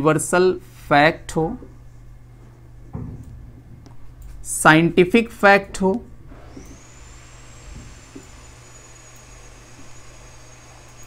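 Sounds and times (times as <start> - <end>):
thin high whine: 6.3 - 11.0.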